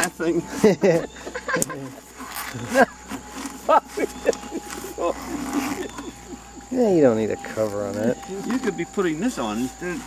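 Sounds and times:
people laughing: 0.0 - 3.0, 3.6 - 7.0
canvas cover handling noise: 2.1 - 6.4.

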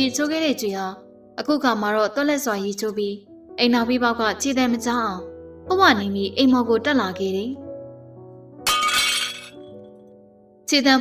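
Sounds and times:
soft background music: 0.0 - 11.0
glass shattering: 8.7 - 9.7.

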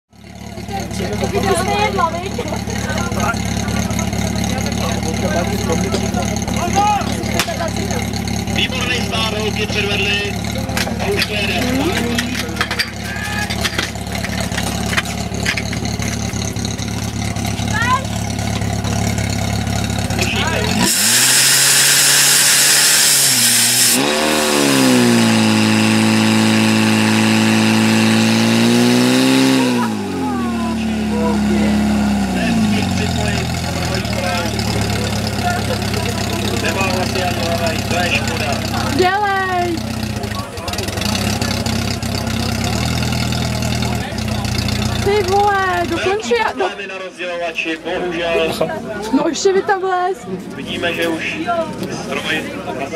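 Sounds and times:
fire pump engine revving: 0.1 - 46.6
people shouting: 13.0 - 13.7
loud rushing hiss: 20.8 - 24.8.

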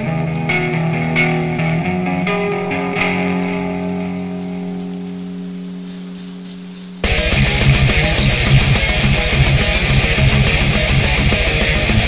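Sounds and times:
slow picked guitar: 0.0 - 12.0.

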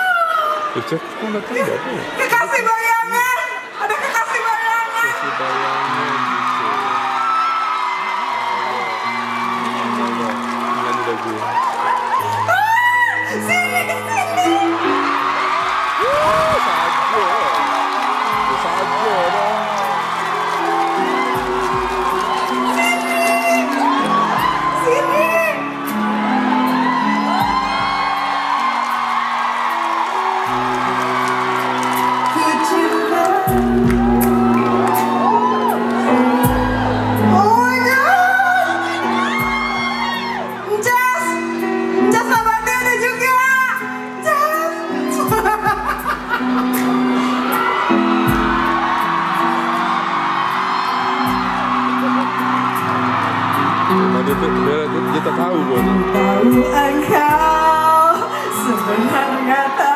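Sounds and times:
audience whooping and screaming: 0.0 - 59.9
live concert music with low chords: 4.8 - 59.9.

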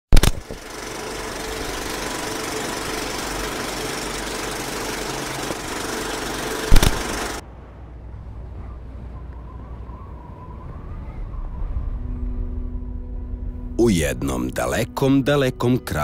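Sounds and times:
loud click: 0.1 - 0.6, 6.7 - 7.1
mechanical whirring with hum: 0.1 - 13.8.

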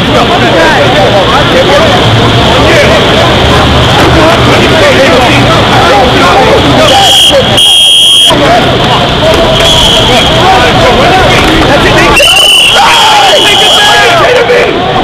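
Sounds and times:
voices shouting: 4.7 - 15.0
whistle blasts: 6.9 - 8.4, 12.2 - 14.1.

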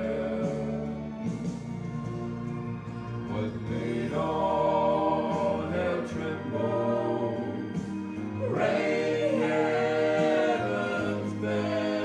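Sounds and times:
male vocal quartet singing: 0.0 - 1.8, 3.2 - 12.0.

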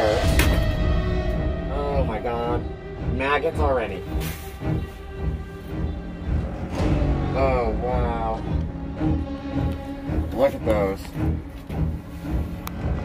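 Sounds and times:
low drum beats: 0.0 - 12.1
ominous music with held tones: 0.0 - 13.0.

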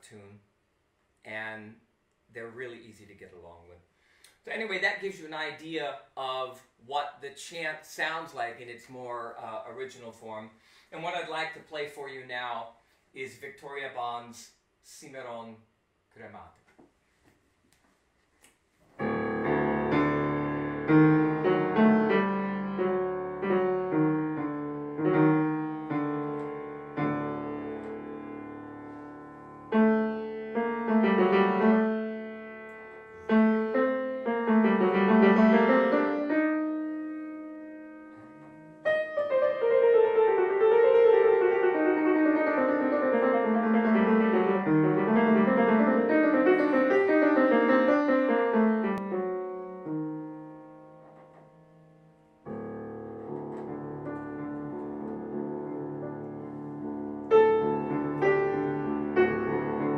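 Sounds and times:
solo piano playing: 19.0 - 59.9.

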